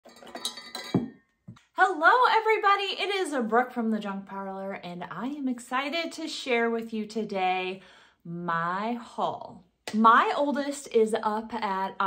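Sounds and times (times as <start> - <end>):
copper mugs clinking: 0.0 - 1.3.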